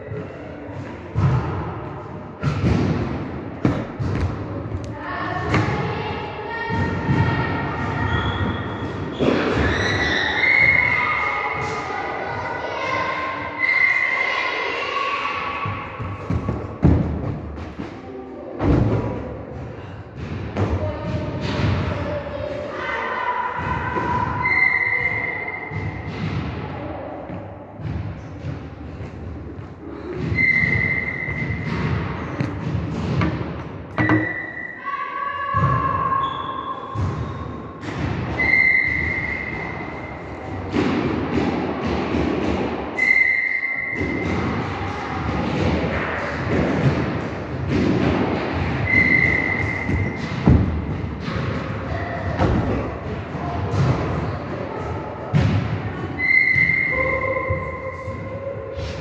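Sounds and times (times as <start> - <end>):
echoing thuds in a hall: 0.0 - 59.0.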